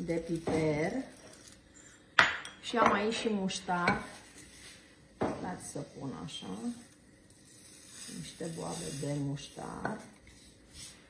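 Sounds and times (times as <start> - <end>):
woman speaking: 0.0 - 1.1, 2.6 - 4.2, 5.4 - 6.8, 8.1 - 10.1.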